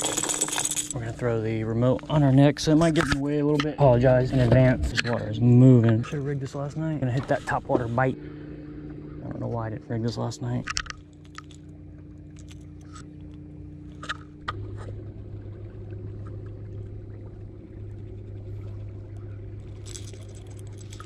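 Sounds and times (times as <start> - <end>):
fishing gear clicks and rustles: 0.0 - 1.0, 10.6 - 14.5, 19.6 - 21.0
electric motor humming: 0.0 - 21.0.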